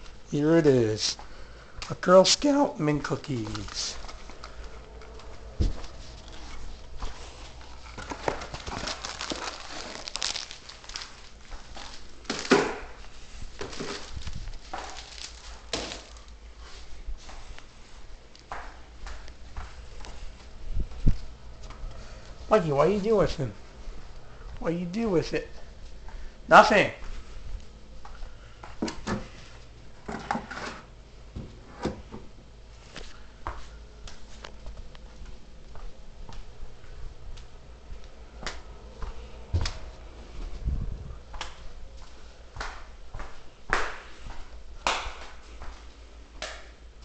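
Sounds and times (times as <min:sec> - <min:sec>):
rustling and crinkling handling: 0:00.0 - 0:30.5, 0:32.6 - 0:38.2.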